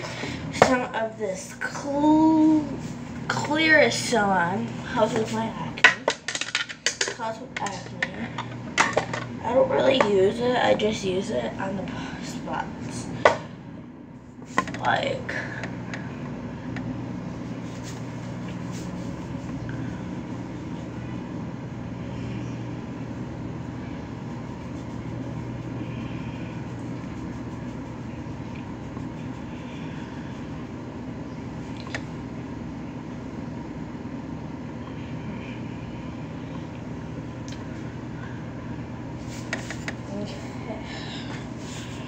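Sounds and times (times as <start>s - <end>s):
low machine hum with rushing: 0.0s - 42.0s.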